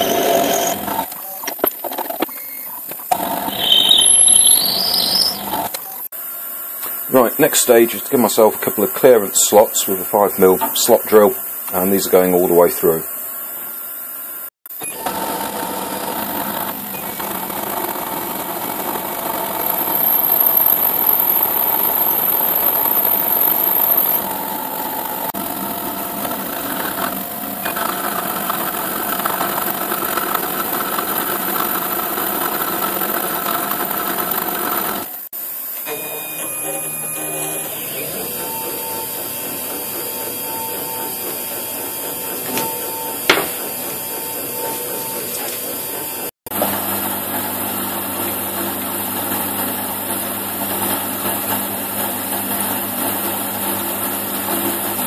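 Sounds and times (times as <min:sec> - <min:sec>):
milling machine whine: 0:00.0 - 0:55.0.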